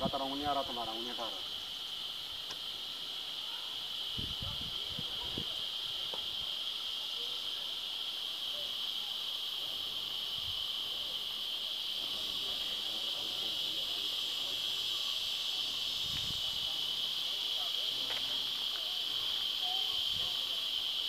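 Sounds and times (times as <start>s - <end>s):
high-pitched insect buzzing: 0.0s - 21.0s.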